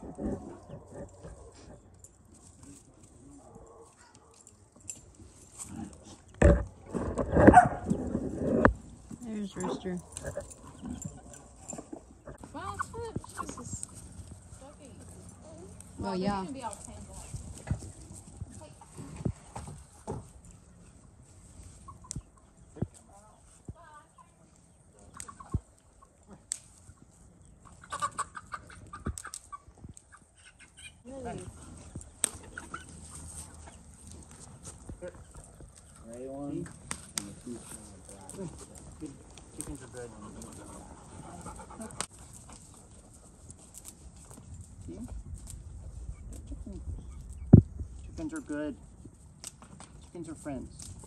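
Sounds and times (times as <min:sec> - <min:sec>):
chicken clucking: 0:00.0 - 0:01.8, 0:10.3 - 0:14.0, 0:21.8 - 0:22.6, 0:24.1 - 0:34.1.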